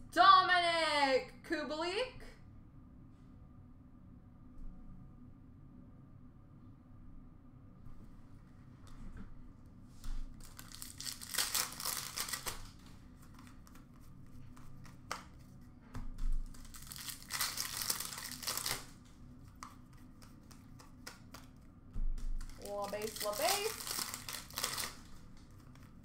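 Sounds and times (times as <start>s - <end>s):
wrappers tearing and crinkling: 10.3s - 13.6s, 16.4s - 19.0s, 22.4s - 26.0s.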